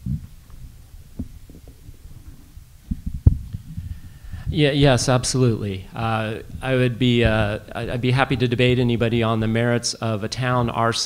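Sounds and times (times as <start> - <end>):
microphone handling thumps: 0.0 - 9.6.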